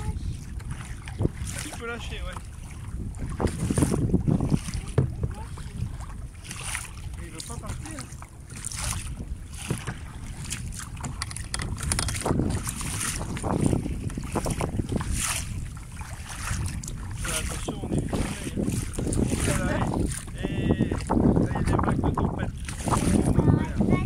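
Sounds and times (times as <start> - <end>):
kayak paddle splashing: 0.0 - 24.0
wind buffeting microphone: 0.0 - 24.0.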